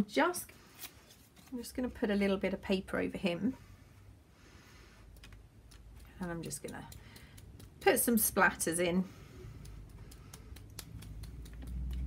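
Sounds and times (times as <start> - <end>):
paintbrush tapping clicks: 5.2 - 8.2, 9.5 - 12.0.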